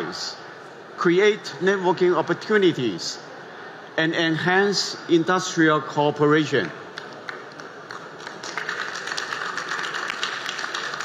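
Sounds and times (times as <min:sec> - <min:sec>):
audience applause: 0:07.0 - 0:11.0.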